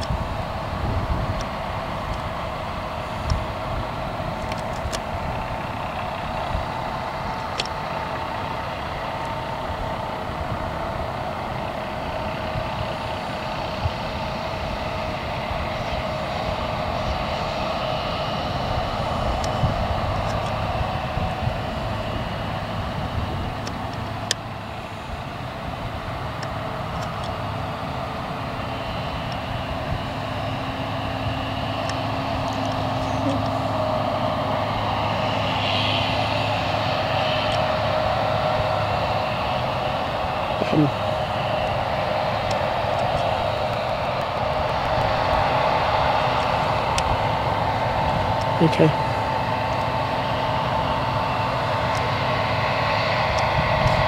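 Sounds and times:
diesel engines running: 0.0s - 54.0s.

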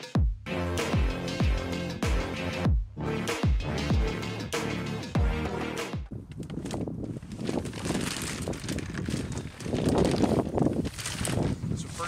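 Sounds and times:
electronic music with bass sweep: 0.0s - 6.1s
plastic wrapping rustling: 6.4s - 12.0s.

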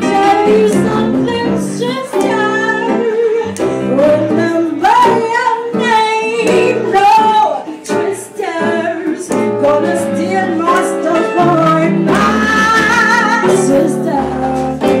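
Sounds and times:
woman singing blues: 0.0s - 15.0s.

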